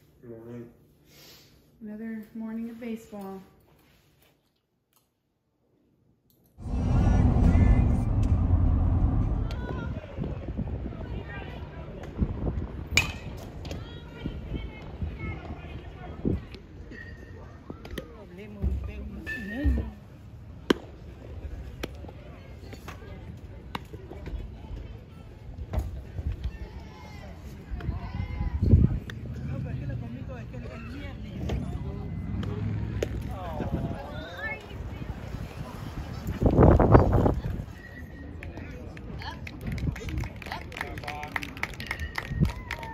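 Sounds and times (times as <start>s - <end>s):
steady low rumble: 6.6s - 12.9s.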